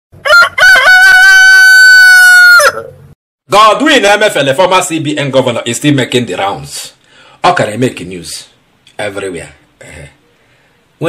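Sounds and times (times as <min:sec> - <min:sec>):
rooster crowing: 0:00.2 - 0:03.0.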